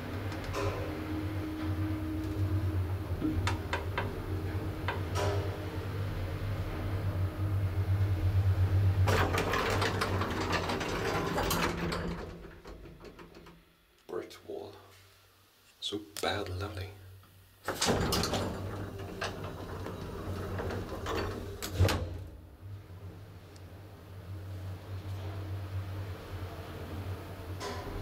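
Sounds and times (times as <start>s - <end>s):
elevator clicks: 0.0s - 6.1s, 9.0s - 13.7s, 17.6s - 22.3s
elevator humming: 0.0s - 13.9s, 16.6s - 28.0s.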